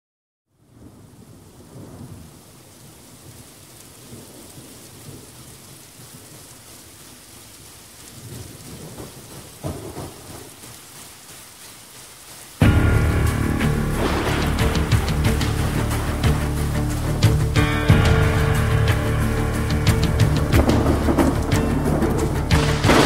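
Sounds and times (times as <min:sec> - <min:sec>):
rain falling: 0:00.5 - 0:23.0
rolling thunder: 0:08.2 - 0:10.6, 0:12.6 - 0:23.0.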